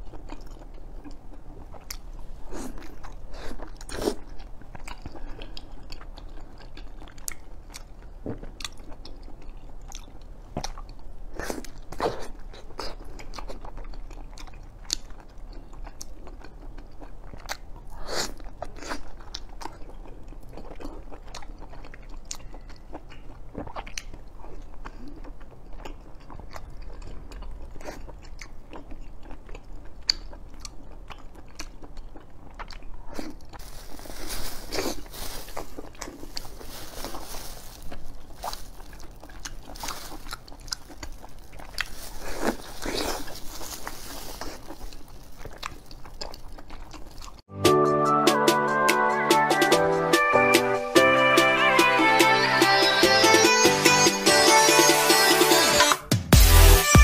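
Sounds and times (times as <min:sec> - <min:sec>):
chewing and biting pastry: 0:00.0 - 0:47.5
plastic gloves crinkling: 0:33.1 - 0:47.4.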